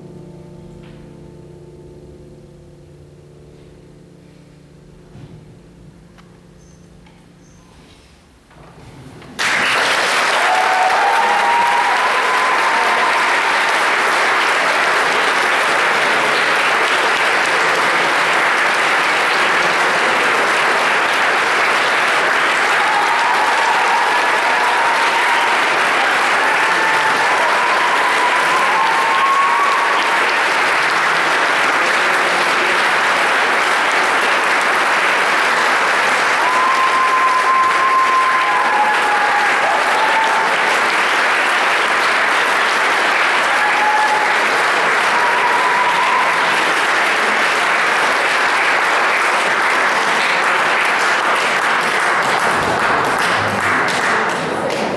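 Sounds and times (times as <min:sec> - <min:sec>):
audience applauding: 0:08.9 - 0:54.9.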